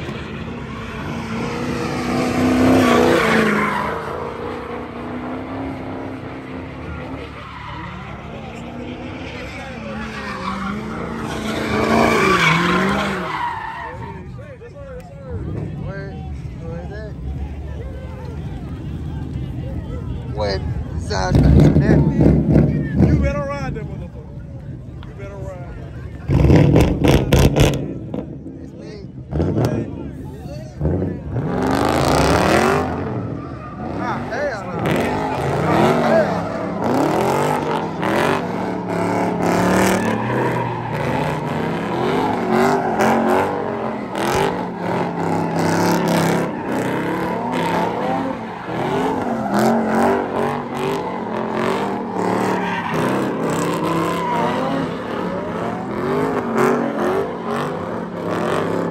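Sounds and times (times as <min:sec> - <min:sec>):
car engine revving hard: 0:26.3 - 0:28.4, 0:30.8 - 0:58.9
tyres squealing: 0:32.8 - 0:58.3.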